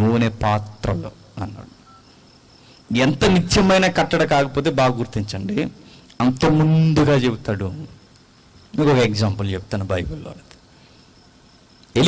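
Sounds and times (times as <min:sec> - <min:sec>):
man speaking into a microphone: 0:00.0 - 0:01.8, 0:02.9 - 0:08.0, 0:08.7 - 0:10.5
faint electronic beeps: 0:00.8 - 0:02.3.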